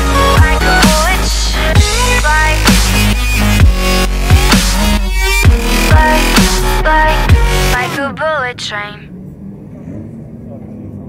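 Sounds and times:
people talking: 0:07.7 - 0:09.1.

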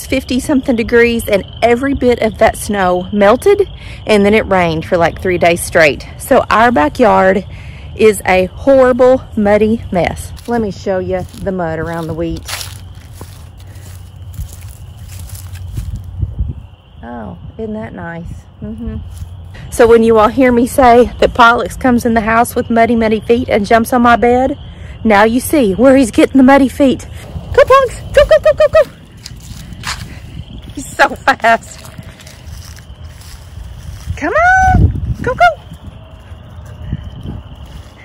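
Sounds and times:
wind rumble on microphone: 0:00.0 - 0:22.6, 0:24.2 - 0:38.0
footsteps on muddy ground: 0:11.2 - 0:16.2, 0:27.2 - 0:34.6
low steady rumble: 0:27.1 - 0:32.6.

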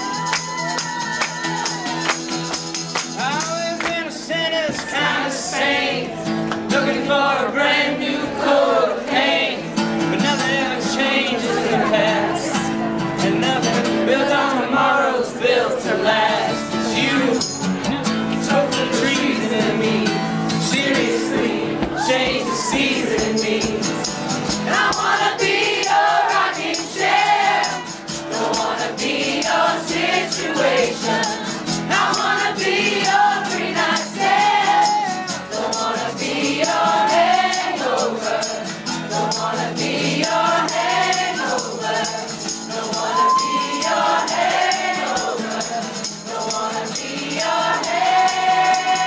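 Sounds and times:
strummed acoustic guitar: 0:00.0 - 0:49.0
man and woman singing: 0:03.6 - 0:49.0.

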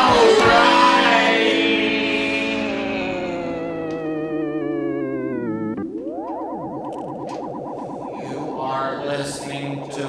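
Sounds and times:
synthesizer drone: 0:00.0 - 0:10.0
synthesizer tones sliding in pitch: 0:00.0 - 0:10.0
voice with heavy effects: 0:07.3 - 0:10.0.

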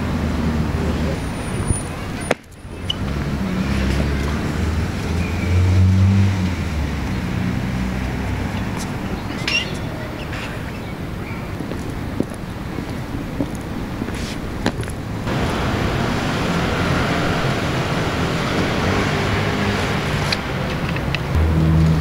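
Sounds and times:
city road traffic: 0:00.0 - 0:22.0.

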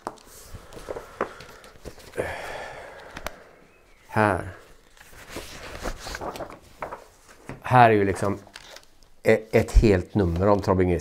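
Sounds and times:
paper rustling: 0:00.0 - 0:02.2, 0:02.8 - 0:11.0.

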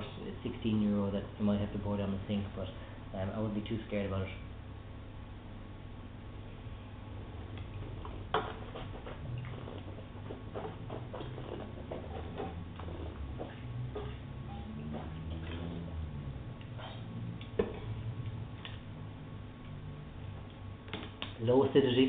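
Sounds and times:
low steady hum: 0:00.0 - 0:22.0
person sipping wine: 0:16.6 - 0:18.0.

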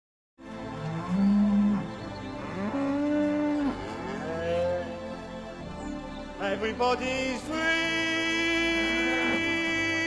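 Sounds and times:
backing music: 0:00.4 - 0:10.0
cows mooing: 0:00.7 - 0:05.2, 0:08.6 - 0:09.6.

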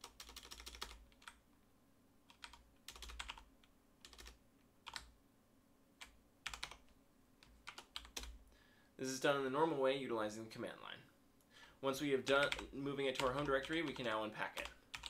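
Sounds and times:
faint keyboard typing: 0:00.0 - 0:01.4, 0:02.2 - 0:05.2, 0:06.0 - 0:08.5, 0:12.2 - 0:15.0.

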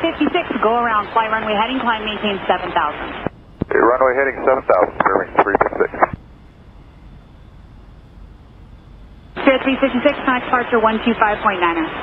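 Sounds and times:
faint high steady tone: 0:00.0 - 0:12.0
radio static hiss: 0:00.0 - 0:12.0
pilot speaking over radio: 0:03.6 - 0:06.2.

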